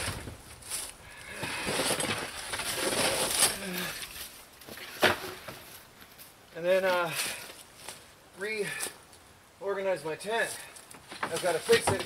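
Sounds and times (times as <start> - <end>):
wooden boards knocking and scraping: 4.7 - 5.7, 10.9 - 12.0.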